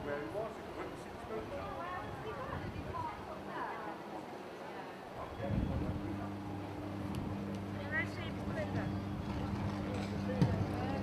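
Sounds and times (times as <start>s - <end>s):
electrical buzzing hum: 5.4s - 11.0s.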